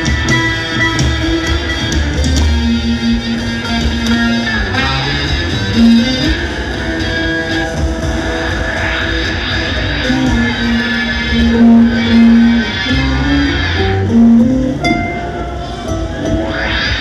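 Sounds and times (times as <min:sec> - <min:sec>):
drums: 0:00.0 - 0:17.0
electric ukulele sustained notes: 0:00.0 - 0:17.0.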